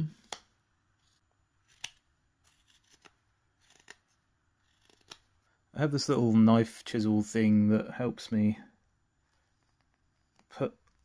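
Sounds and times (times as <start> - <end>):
knife carving wood: 1.0 - 5.4, 9.2 - 11.0.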